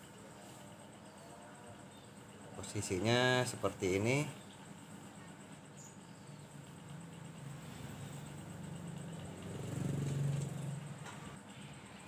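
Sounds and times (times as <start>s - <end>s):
vehicle engine passing: 7.0s - 11.4s.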